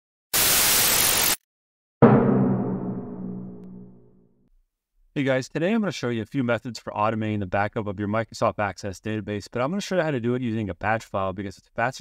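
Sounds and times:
static hiss burst: 0.4s - 1.4s.

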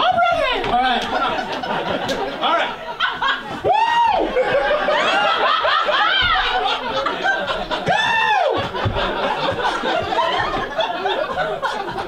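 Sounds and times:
audience laughing: 0.8s - 12.0s.

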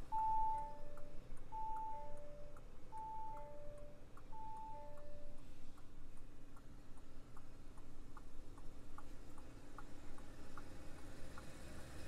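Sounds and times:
faint regular ticking: 0.0s - 12.0s
two-note electronic warning chime: 0.1s - 5.4s.

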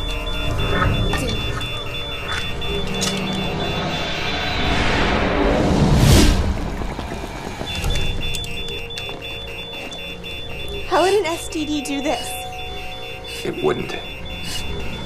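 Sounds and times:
monitor alarm beeping: 0.0s - 5.1s, 6.5s - 15.0s
rising whoosh: 3.8s - 7.9s.

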